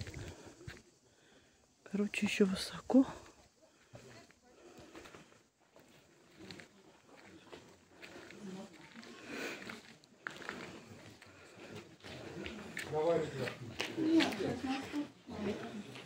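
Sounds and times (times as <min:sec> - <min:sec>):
people talking quietly: 0:00.0 - 0:16.0.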